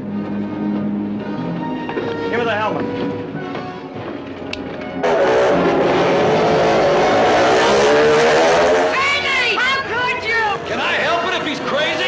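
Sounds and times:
music: 0:00.0 - 0:05.0
motorcycle engine circling: 0:03.0 - 0:09.3.

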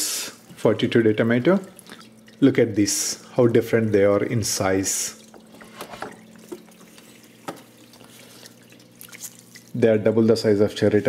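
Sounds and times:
steady low hum: 0:00.0 - 0:11.0
water trickling and dripping: 0:00.3 - 0:09.9.

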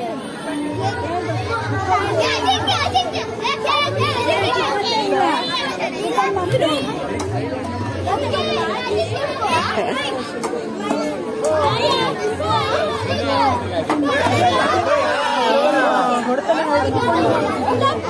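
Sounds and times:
children talking and shouting: 0:00.0 - 0:18.0.

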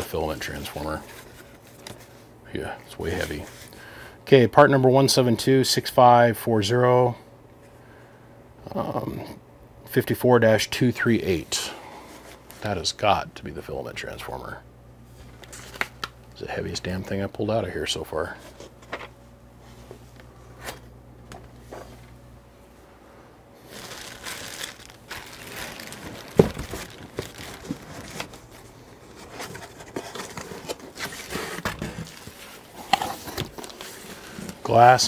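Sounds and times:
cardboard rustling: 0:23.6 - 0:35.0
plastic wrap crinkling: 0:23.6 - 0:35.0.

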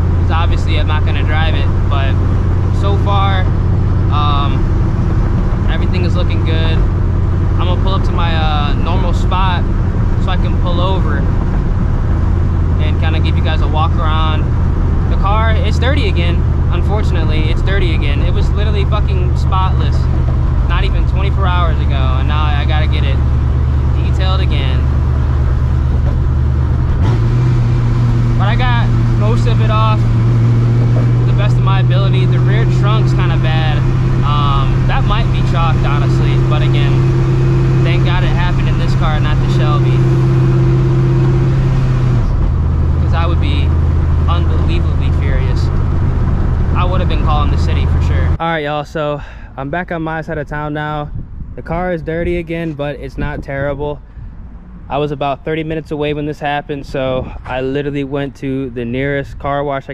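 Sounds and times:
car engine droning from cabin: 0:00.0 - 0:59.9
person talking indistinctly: 0:00.2 - 0:03.5, 0:04.1 - 0:04.7, 0:05.6 - 0:06.9, 0:07.6 - 0:11.3, 0:12.8 - 0:14.5, 0:15.1 - 0:25.0, 0:28.4 - 0:30.1, 0:30.9 - 0:40.1, 0:43.0 - 0:43.7, 0:44.3 - 0:45.7, 0:46.8 - 0:54.0, 0:54.9 - 0:59.9.

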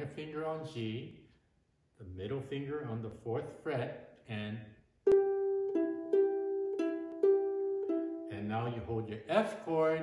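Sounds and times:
man's voice: 0:00.0 - 0:01.2, 0:02.0 - 0:04.8, 0:08.3 - 0:10.0
ukulele notes picked: 0:05.0 - 0:09.2.

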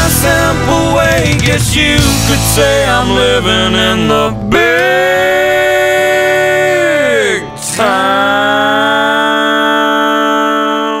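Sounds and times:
country-rock band chord: 0:00.0 - 0:09.1.

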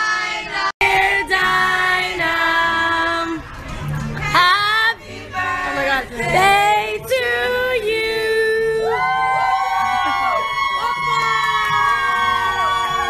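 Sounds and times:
several voices singing: 0:00.0 - 0:09.2.

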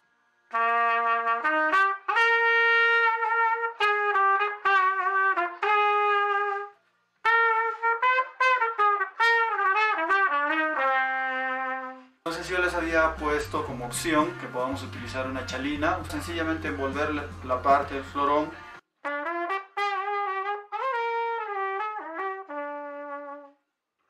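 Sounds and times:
trumpet playing melody: 0:00.5 - 0:23.6.

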